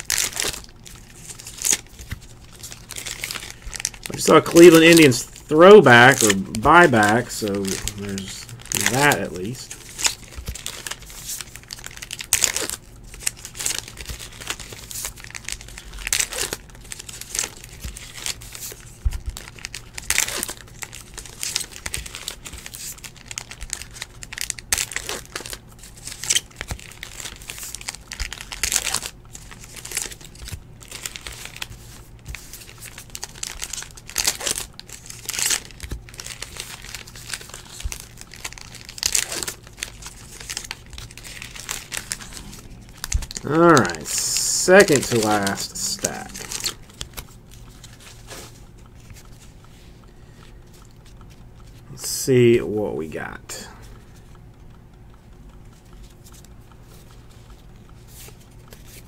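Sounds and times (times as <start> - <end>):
trading cards rustling: 0.0 - 54.4, 55.8 - 59.0.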